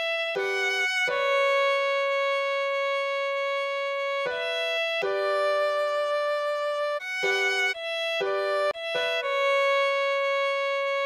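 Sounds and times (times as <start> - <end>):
violin holding long note: 0.0 - 11.0.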